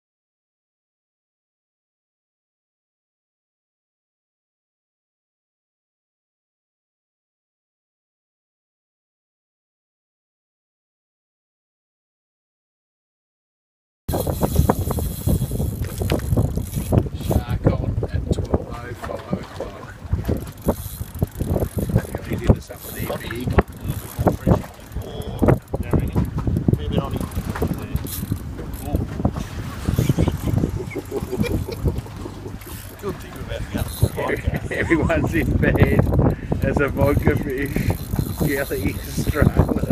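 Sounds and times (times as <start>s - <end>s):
fishing reel clicks and knocks: 14.1s - 17.4s, 20.2s - 29.0s, 33.8s - 34.2s, 35.4s - 39.9s
wind buffeting microphone: 14.1s - 39.9s.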